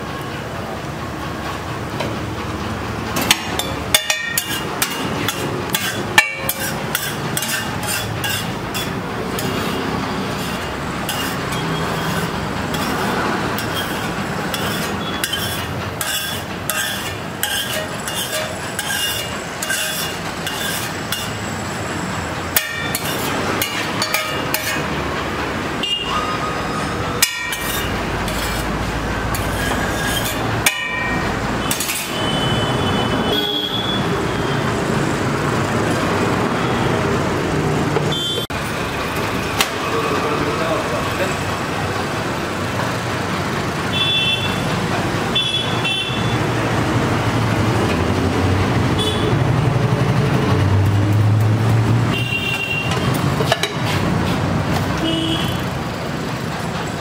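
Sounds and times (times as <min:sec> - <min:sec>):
street traffic: 0:00.0 - 0:57.0
vehicle horns tooting: 0:25.8 - 0:27.0, 0:31.0 - 0:34.7, 0:38.0 - 0:38.6, 0:43.9 - 0:46.5, 0:48.9 - 0:49.5, 0:52.1 - 0:53.2, 0:55.0 - 0:55.7.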